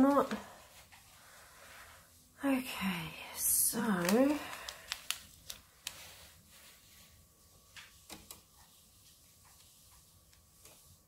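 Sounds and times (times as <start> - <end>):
person speaking: 0.0 - 0.6, 2.4 - 5.0
paper rustling: 3.7 - 11.0.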